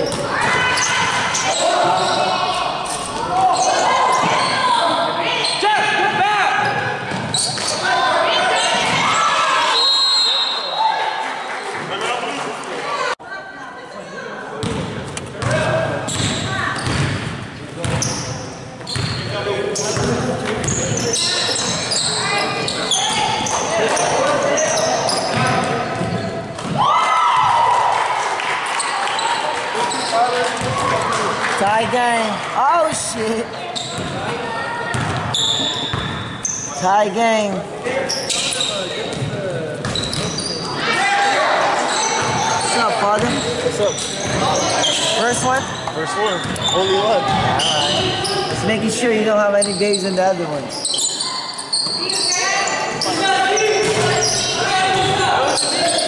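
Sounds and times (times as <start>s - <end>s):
sneakers squeaking: 0.0s - 11.0s, 13.9s - 27.6s, 28.7s - 56.0s.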